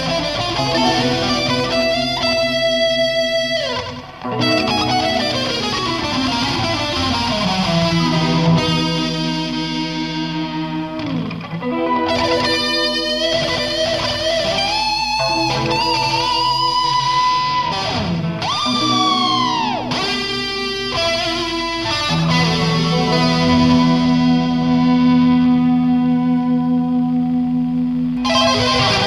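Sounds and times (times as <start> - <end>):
electric guitar with effects: 0.0 - 29.0.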